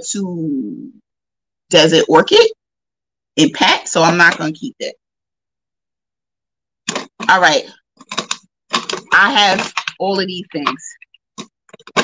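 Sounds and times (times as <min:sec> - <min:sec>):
woman's voice: 0:03.4 - 0:04.9, 0:07.2 - 0:07.7, 0:09.1 - 0:11.0.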